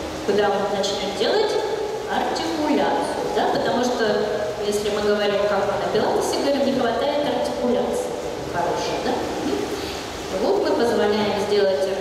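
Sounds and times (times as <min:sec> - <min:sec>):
person talking: 0:00.3 - 0:12.0.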